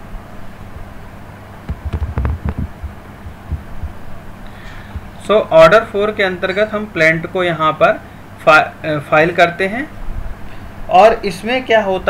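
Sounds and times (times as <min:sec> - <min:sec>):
low electrical hum: 0:00.0 - 0:12.0
soft thumps and clicks: 0:01.7 - 0:04.0.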